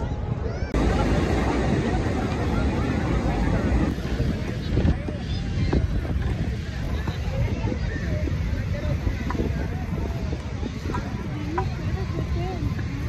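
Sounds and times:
indistinct voices: 0:00.4 - 0:13.0
steady low rumble: 0:00.6 - 0:13.0.

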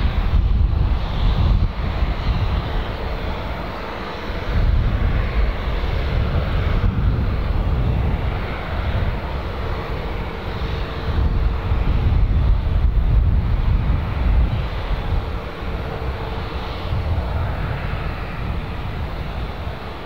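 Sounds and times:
turboprop engine running: 0:00.0 - 0:20.0
wind buffeting microphone: 0:00.0 - 0:20.0.

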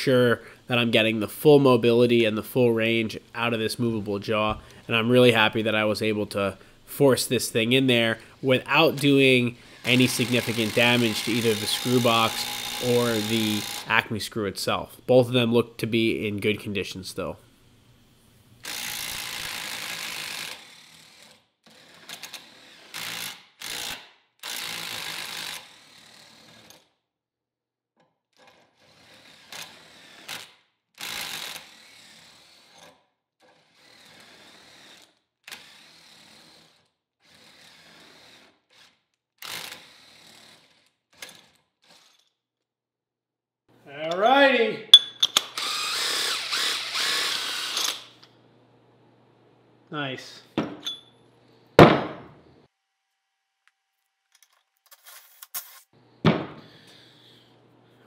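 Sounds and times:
small power tool spinning: 0:08.9 - 0:14.0, 0:18.6 - 0:26.9, 0:28.4 - 0:42.4, 0:45.3 - 0:48.3
metal screw scraping and rubbing: 0:54.3 - 0:56.0.

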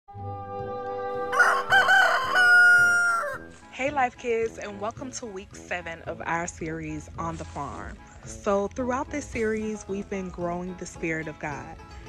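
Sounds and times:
background music: 0:00.1 - 0:12.0
rooster crowing: 0:01.1 - 0:03.5.

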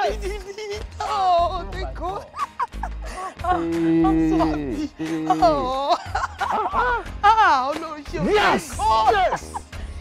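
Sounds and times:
background music: 0:00.0 - 0:10.0
excited wordless cries: 0:01.0 - 0:07.5
people laughing: 0:01.8 - 0:07.1, 0:08.2 - 0:09.8.

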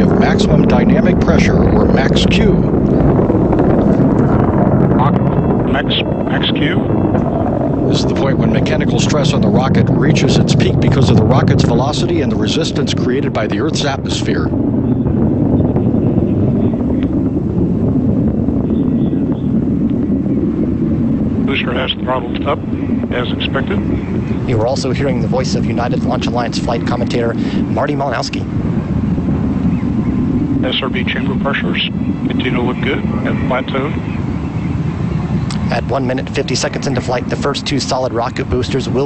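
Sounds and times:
distant rocket engine rumble: 0:00.0 - 0:39.0
wind buffeting microphone: 0:00.0 - 0:39.0.

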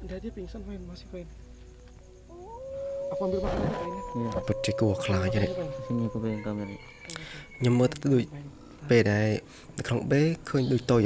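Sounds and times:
low steady drone: 0:02.3 - 0:06.7
drawn-out wailing cry: 0:02.3 - 0:07.8.

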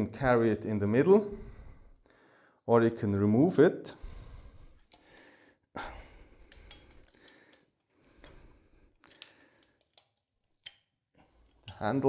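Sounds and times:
small metal clicks: 0:06.5 - 0:08.4, 0:09.0 - 0:11.9.

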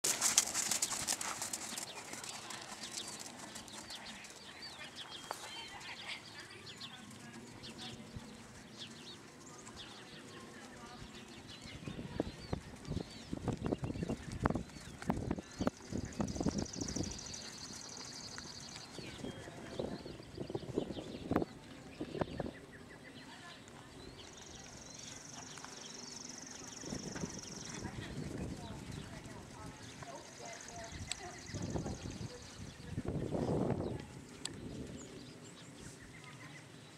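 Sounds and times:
horse trotting on sand: 0:00.0 - 0:20.2, 0:24.1 - 0:32.9
small birds chirping: 0:00.0 - 0:36.9.

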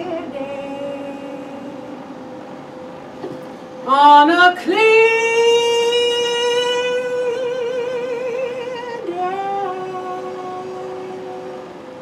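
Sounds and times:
woman singing long high note: 0:00.0 - 0:02.0, 0:03.9 - 0:12.0.

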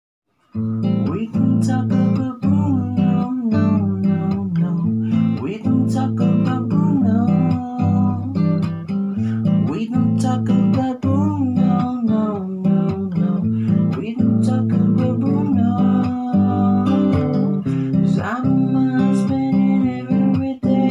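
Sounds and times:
acoustic guitar strumming chords: 0:00.5 - 0:20.9.

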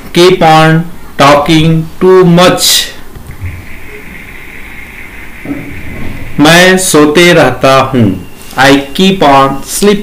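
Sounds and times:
high hiss: 0:01.6 - 0:08.8
low rumble: 0:03.3 - 0:06.4.

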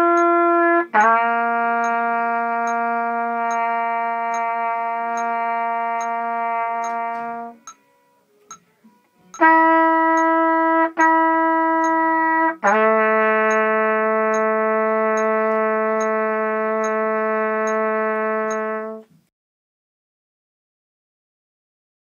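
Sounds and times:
trumpet notes: 0:00.0 - 0:19.2.

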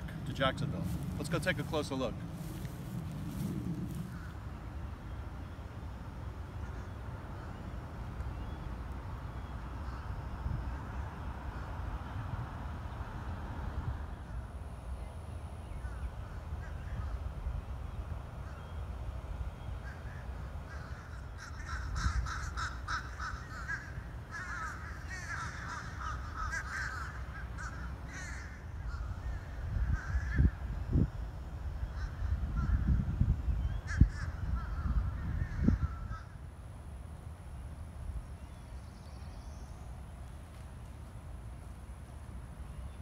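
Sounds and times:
birds calling roughly: 0:00.0 - 0:11.8, 0:14.9 - 0:36.4.

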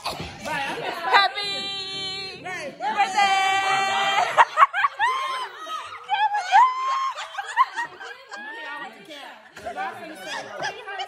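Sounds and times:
people laughing and snickering: 0:00.0 - 0:11.0.

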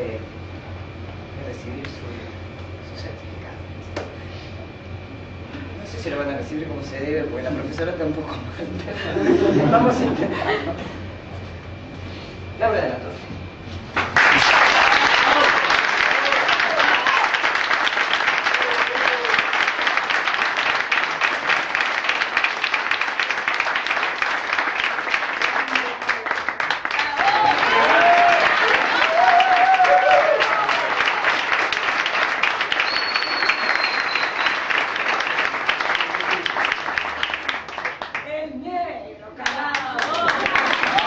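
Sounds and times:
people applauding: 0:13.9 - 0:38.4, 0:39.4 - 0:41.0
people cheering and calling out: 0:14.8 - 0:17.4, 0:18.5 - 0:19.5, 0:26.9 - 0:31.2.

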